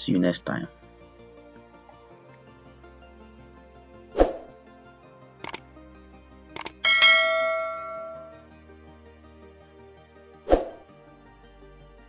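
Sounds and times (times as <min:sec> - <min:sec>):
soft background music: 0:00.0 - 0:12.0
mouse clicks: 0:05.4 - 0:05.6, 0:06.6 - 0:06.8
notification bell ding: 0:06.6 - 0:08.4.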